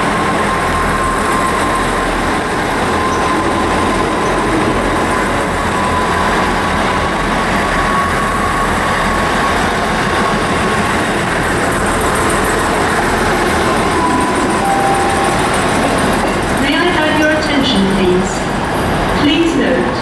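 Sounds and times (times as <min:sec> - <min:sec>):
diesel train engine rumbling: 0:00.0 - 0:20.0
wheels squealing: 0:01.4 - 0:06.5.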